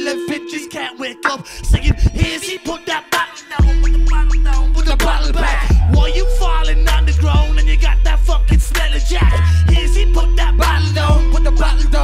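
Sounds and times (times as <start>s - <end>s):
hip hop backing beat: 0.0s - 12.0s
rapping into a microphone: 0.0s - 12.0s
heavy deep bass: 1.6s - 2.4s, 3.6s - 12.0s.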